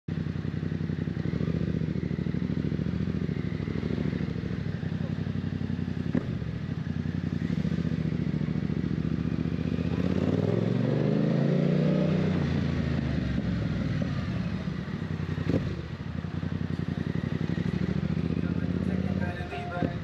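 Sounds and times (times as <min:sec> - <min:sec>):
motorcycle engine idling: 0:00.1 - 0:10.2, 0:12.5 - 0:20.0.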